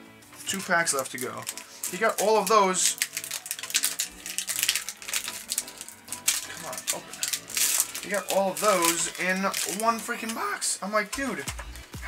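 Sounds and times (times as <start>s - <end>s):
foil wrapper crinkling: 0.4s - 11.4s.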